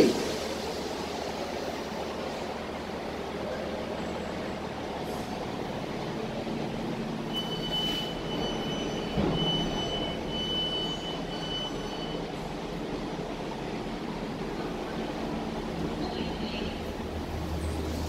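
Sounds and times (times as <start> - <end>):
lift machinery hum: 0.0 - 18.0.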